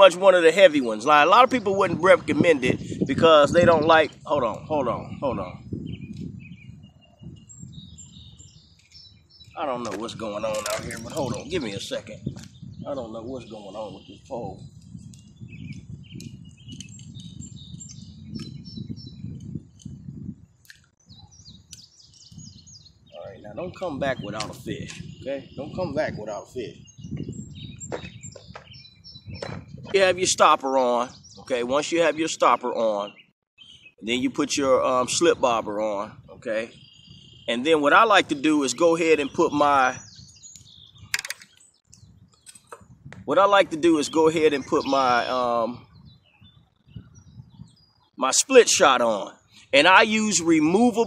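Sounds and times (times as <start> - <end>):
songbirds chirping and whistling: 0.0 - 51.0
low rumbling microphone noise: 0.9 - 31.9, 33.6 - 48.2
sharp clicks: 40.5 - 42.9.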